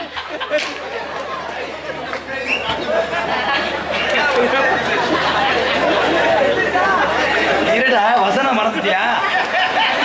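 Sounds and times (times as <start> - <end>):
several voices talking at once: 0.6 - 9.6.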